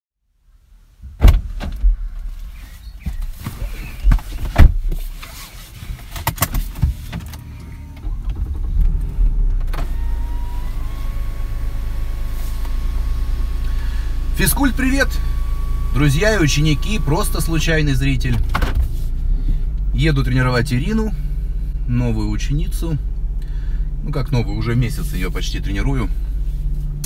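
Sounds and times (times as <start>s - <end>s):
handling knocks and clicks in car: 1.1s - 2.3s, 3.0s - 10.2s, 18.2s - 19.9s
car engine idling: 6.6s - 27.0s.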